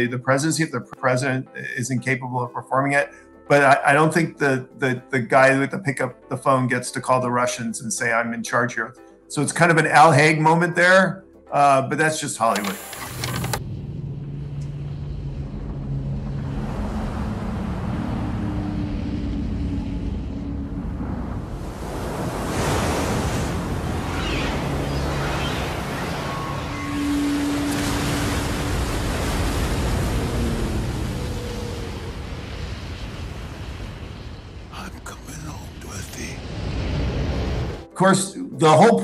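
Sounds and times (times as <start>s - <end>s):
rushing roar of water: 16.3s - 34.6s.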